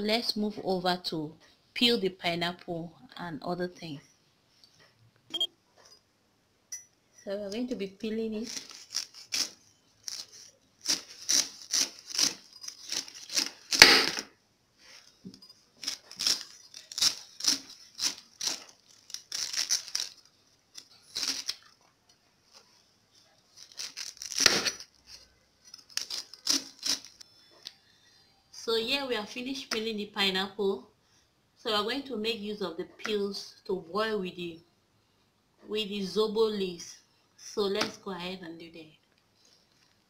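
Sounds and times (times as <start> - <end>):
knife cutting pineapple rind: 8.4 - 14.2, 15.8 - 21.6, 23.5 - 27.2.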